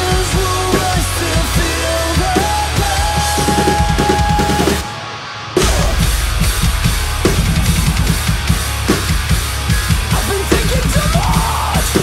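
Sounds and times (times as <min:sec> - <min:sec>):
acoustic drum kit: 0:00.0 - 0:05.0, 0:05.6 - 0:12.0
metalcore song with distorted guitars: 0:00.0 - 0:12.0.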